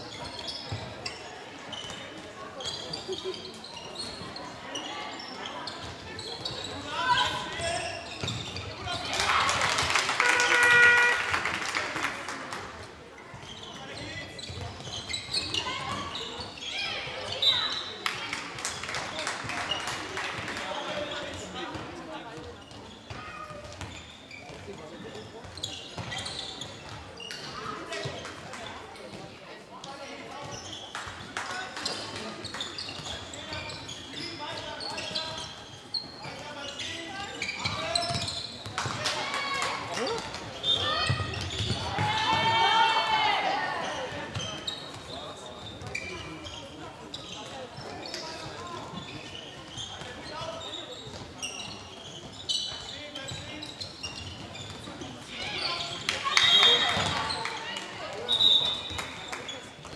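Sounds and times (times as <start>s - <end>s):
voices calling in echoing hall: 0.0s - 59.9s
ball bouncing on hall floor: 37.6s - 42.7s, 56.0s - 59.9s.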